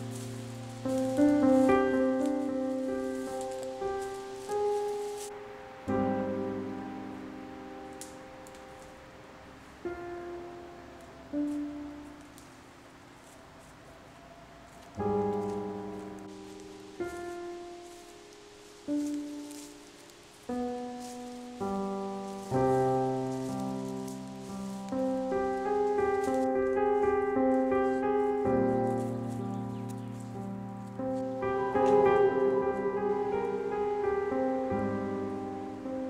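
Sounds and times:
held music chord: 0.0s - 13.4s, 14.8s - 36.0s.

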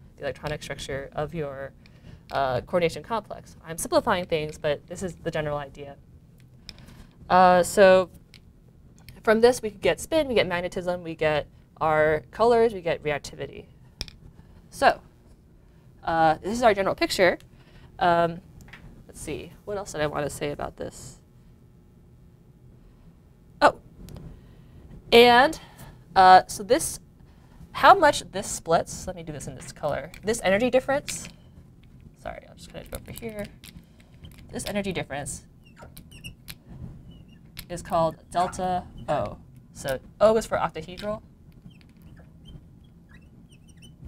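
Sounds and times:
marker squeaking on glass: 35.6s - 39.2s, 41.6s - 44.0s.

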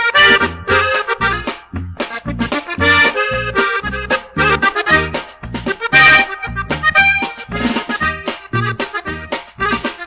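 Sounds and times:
button accordion melody: 0.0s - 10.0s
steady bass beat: 0.0s - 10.0s.

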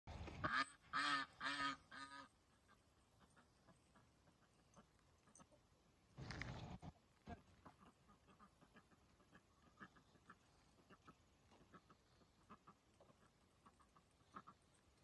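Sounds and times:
faint barnyard sound: 0.1s - 15.0s
waterfowl honking: 0.2s - 5.5s, 7.6s - 14.7s.

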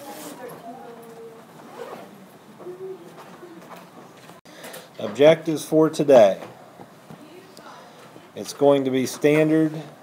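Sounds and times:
faint voices: 0.0s - 4.4s.

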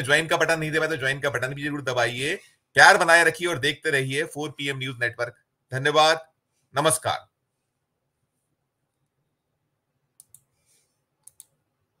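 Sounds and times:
sharp quick clicks: 10.2s - 10.5s, 11.2s - 11.6s.

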